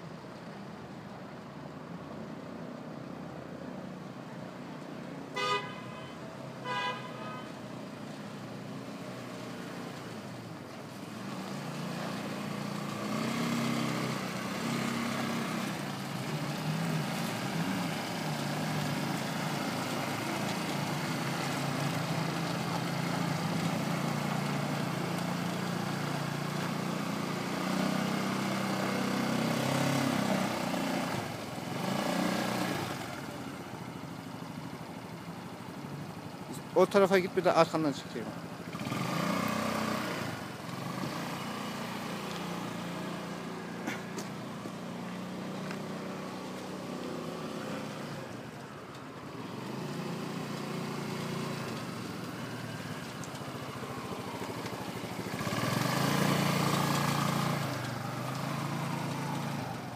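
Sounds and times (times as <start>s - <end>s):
horn toots: 5.4s - 7.6s
quad bike engine driving past: 10.8s - 48.6s, 49.3s - 59.9s.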